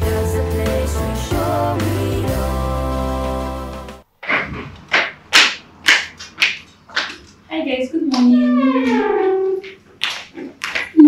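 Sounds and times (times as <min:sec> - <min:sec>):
footsteps coming down stairs: 0:04.1 - 0:07.4, 0:08.2 - 0:11.0.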